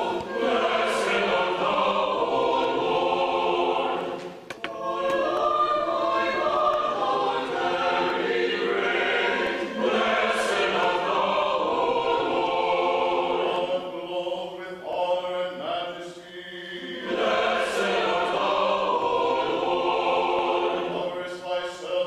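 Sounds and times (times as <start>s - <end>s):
mixed choir singing a cappella: 0.0s - 22.0s
clicks: 4.2s - 5.5s.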